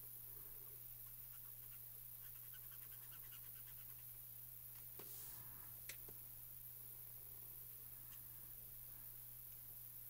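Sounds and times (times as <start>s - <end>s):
low steady hum: 0.0s - 10.0s
marker scratching on paper: 1.3s - 4.0s.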